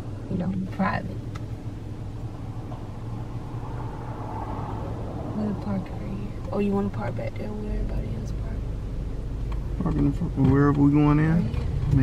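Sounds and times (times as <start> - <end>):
car engine humming: 0.0 - 12.0.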